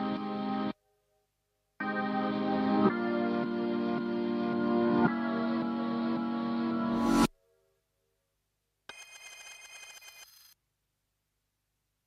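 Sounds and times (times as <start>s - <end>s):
bright ringing tone: 8.9s - 10.6s.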